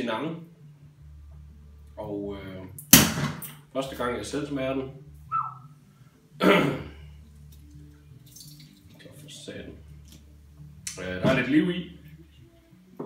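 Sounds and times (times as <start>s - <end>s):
person coughing: 6.4s - 7.0s.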